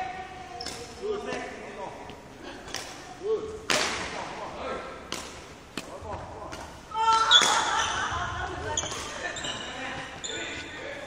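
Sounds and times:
racket hitting shuttlecock: 0:03.7 - 0:04.2, 0:05.1 - 0:07.8
shoes squeaking on court floor: 0:06.6 - 0:11.0.

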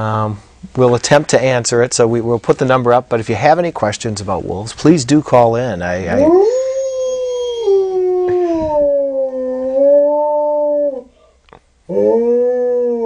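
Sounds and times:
wolf howling: 0:06.1 - 0:11.1, 0:11.9 - 0:13.0.

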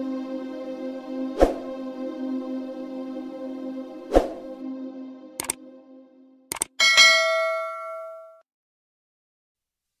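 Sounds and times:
bell ding: 0:06.8 - 0:08.4.

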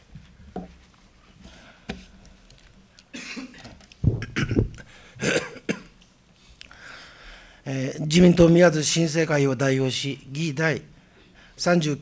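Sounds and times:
man coughing into microphone: 0:03.2 - 0:06.0.

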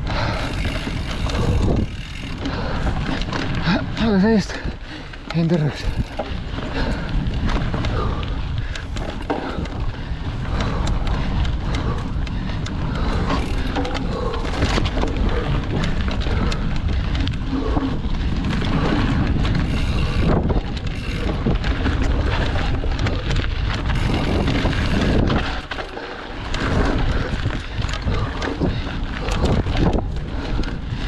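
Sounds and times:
bike rattling over bumps: 0:00.0 - 0:31.0
bike tyres rolling on dirt: 0:00.0 - 0:31.0
wind rushing over microphone: 0:00.0 - 0:31.0.

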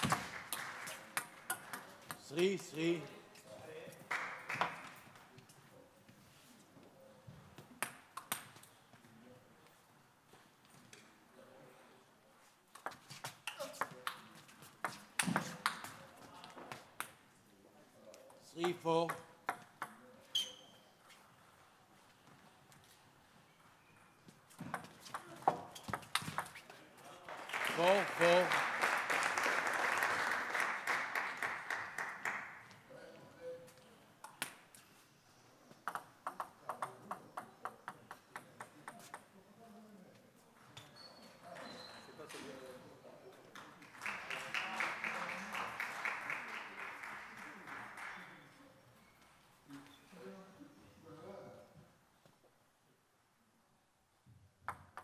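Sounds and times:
people clapping: 0:00.0 - 0:02.8, 0:04.0 - 0:05.4, 0:26.1 - 0:32.9, 0:43.5 - 0:48.6
ball bouncing on table: 0:14.8 - 0:16.0, 0:18.6 - 0:20.0, 0:24.6 - 0:26.6, 0:35.8 - 0:39.3, 0:54.6 - 0:55.0.

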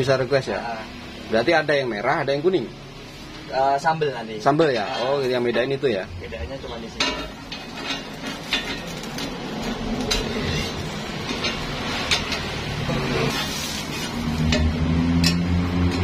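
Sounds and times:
metal spatulas scraping and tapping: 0:07.0 - 0:16.0
bread sizzling on a griddle: 0:07.4 - 0:14.7.

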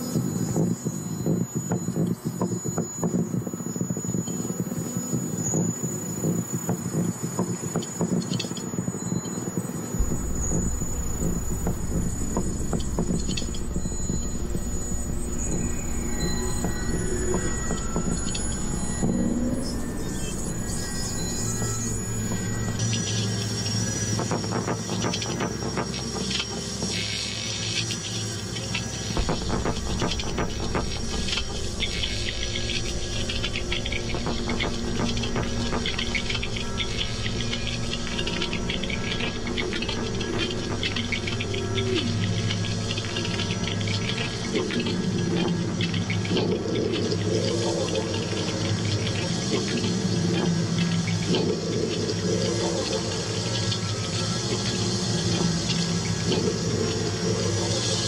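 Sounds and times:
low mechanical hum: 0:10.0 - 0:24.1, 0:24.7 - 0:58.0.

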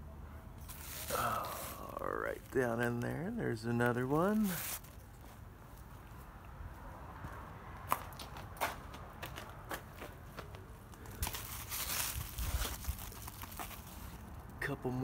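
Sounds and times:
leaves brushing: 0:00.6 - 0:05.3, 0:11.1 - 0:14.4
footsteps crackling among plants: 0:00.6 - 0:06.2, 0:07.2 - 0:14.7.

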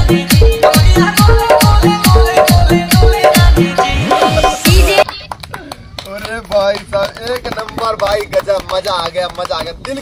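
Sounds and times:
hand claps: 0:04.8 - 0:10.0.

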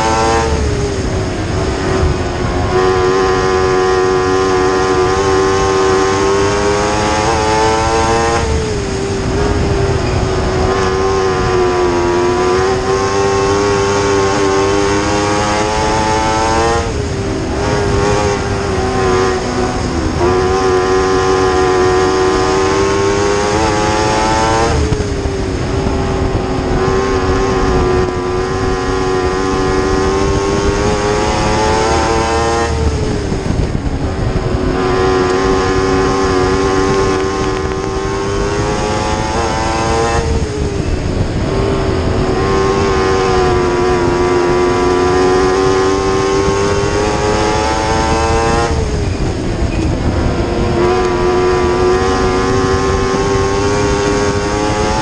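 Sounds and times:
race car engine at high revs: 0:00.0 - 0:55.0.

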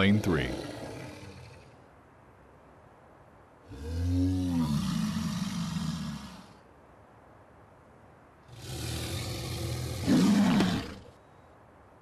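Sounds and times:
dinosaur growling and roaring: 0:00.0 - 0:01.8, 0:03.6 - 0:06.6, 0:08.5 - 0:11.1.

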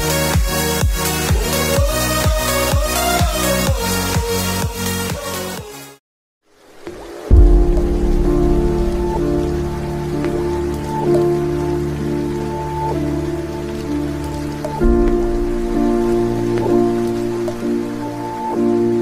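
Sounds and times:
heavy rain off a roof: 0:00.0 - 0:04.6, 0:06.5 - 0:19.0
slow sustained chords: 0:07.3 - 0:19.0.

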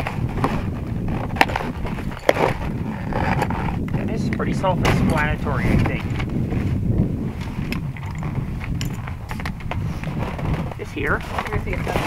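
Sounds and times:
wind rumbling on microphone: 0:00.0 - 0:12.0
small parts clicking and rustling: 0:07.7 - 0:09.8.

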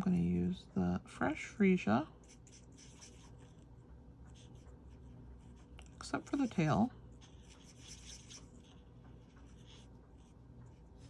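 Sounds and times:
marker scratching on cardstock: 0:02.2 - 0:03.6, 0:07.2 - 0:10.8.

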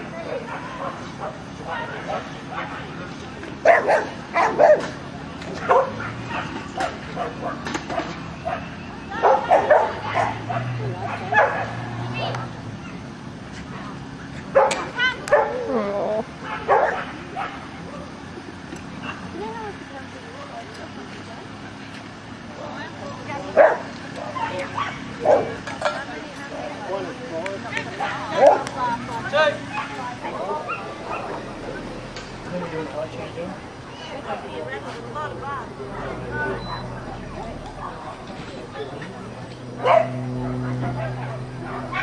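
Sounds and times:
dog barking: 0:03.6 - 0:04.9, 0:05.6 - 0:11.8, 0:14.5 - 0:15.7, 0:16.4 - 0:17.6, 0:23.6 - 0:25.6, 0:28.0 - 0:28.7, 0:39.8 - 0:42.0
faint background talk: 0:08.4 - 0:42.0.

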